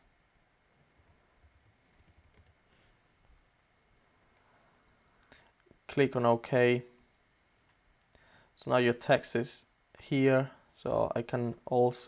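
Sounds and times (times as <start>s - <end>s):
computer keyboard and mouse clicks: 1.0s - 2.6s.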